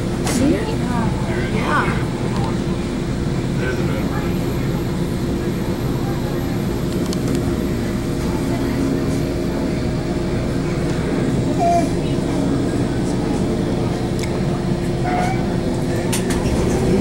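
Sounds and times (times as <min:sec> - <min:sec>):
train car rumble and hum: 0:00.0 - 0:17.0.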